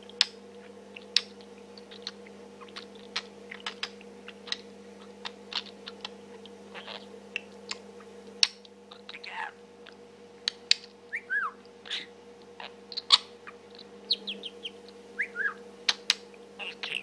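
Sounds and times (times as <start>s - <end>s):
budgerigar chattering: 11.2s - 15.6s, 16.6s - 17.0s
budgerigar falling whistles: 14.1s - 15.6s.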